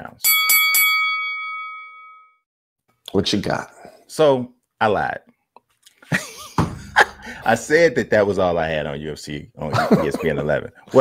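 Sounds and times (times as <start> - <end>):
boxing ring bell ringing: 0.2 - 2.4.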